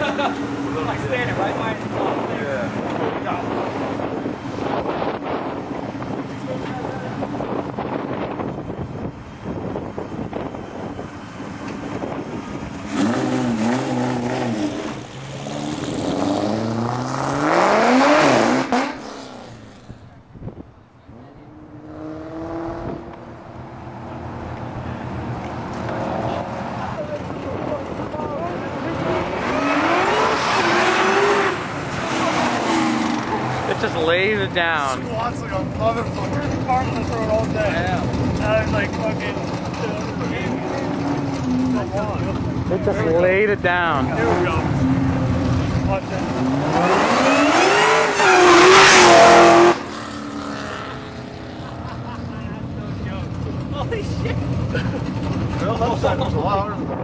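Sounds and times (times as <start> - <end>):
car engine revving and accelerating: 10.3 - 20.1, 21.1 - 57.0.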